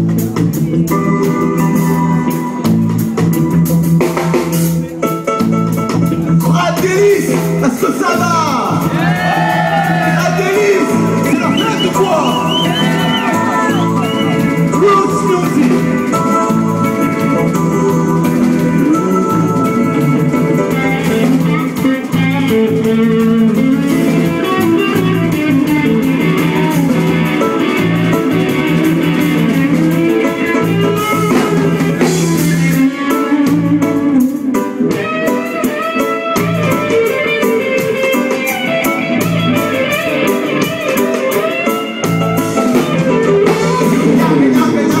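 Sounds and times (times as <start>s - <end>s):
electric guitar: 0.0s - 45.0s
reggae band playing: 0.0s - 45.0s.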